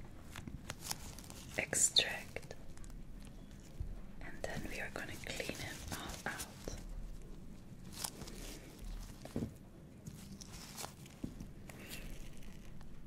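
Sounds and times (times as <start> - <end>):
tissue rustling on silicone pad: 0.2 - 2.4, 4.6 - 9.5, 10.1 - 12.8.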